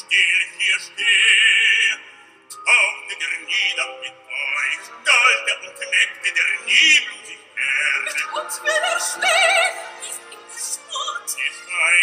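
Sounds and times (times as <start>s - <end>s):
man singing operatic phrases: 0.0s - 9.7s, 11.4s - 12.0s
orchestral accompaniment: 2.5s - 12.0s.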